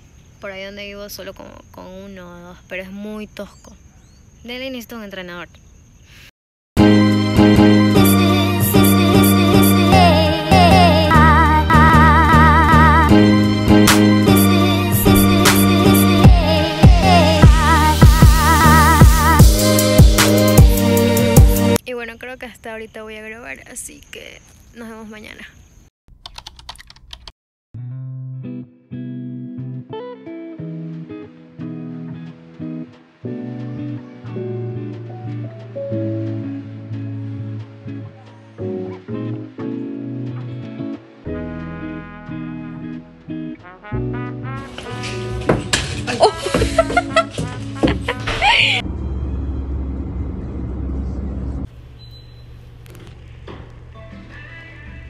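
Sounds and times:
keyboard typing clicks: 0:26.2 - 0:27.3
acoustic guitar music: 0:27.8 - 0:48.8
car road noise rumble: 0:44.8 - 0:55.0.

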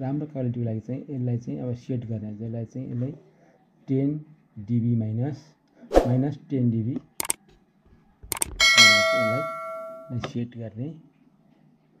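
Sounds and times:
mouse double click: 0:07.2 - 0:07.4, 0:08.3 - 0:08.6
bell ding: 0:08.6 - 0:10.3.

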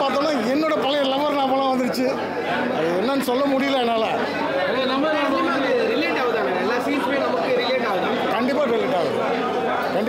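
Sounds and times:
background voices chattering: 0:00.0 - 0:10.0.

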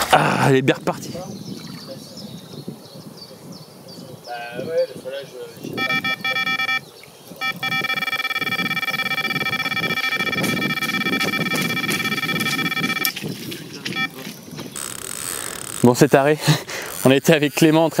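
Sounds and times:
bite alarm rapid beeps: 0:05.8 - 0:06.8, 0:07.4 - 0:13.2, 0:14.0 - 0:14.2.

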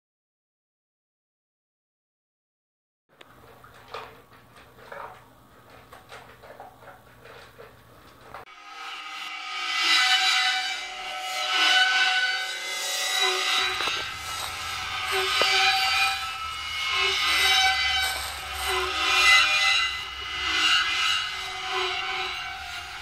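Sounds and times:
rabbit screaming: 0:11.4 - 0:23.0.

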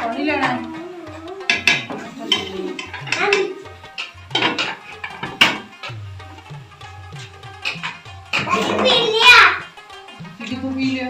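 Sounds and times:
background music with bass beat: 0:00.9 - 0:10.4
metal spatula scraping steel pot: 0:01.5 - 0:09.2.

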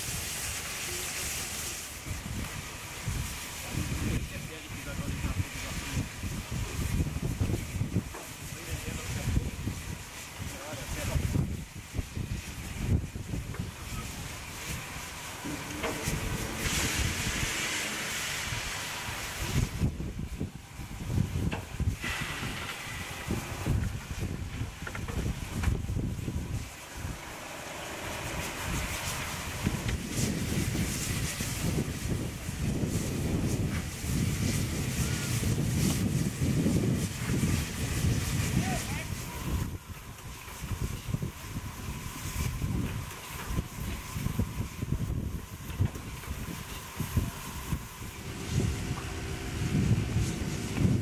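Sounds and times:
steam locomotive hissing: 0:00.0 - 0:51.0
wind buffeting microphone: 0:02.0 - 0:27.4, 0:28.0 - 0:51.0.

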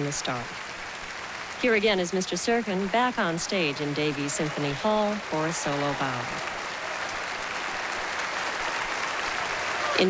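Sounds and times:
audience applauding: 0:00.0 - 0:10.0.

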